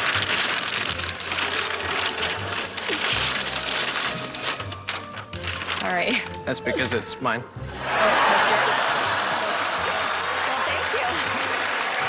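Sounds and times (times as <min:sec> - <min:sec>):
audience applauding: 0:07.8 - 0:12.0.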